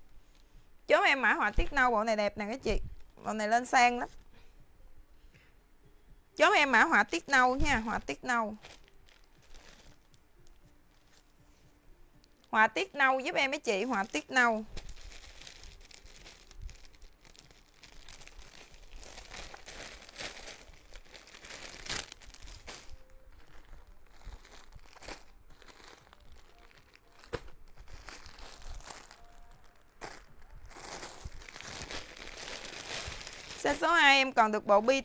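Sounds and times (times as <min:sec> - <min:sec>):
plastic bag crinkling: 0:07.6 - 0:11.2, 0:13.7 - 0:34.0
clothing fabric rustling: 0:13.8 - 0:33.8.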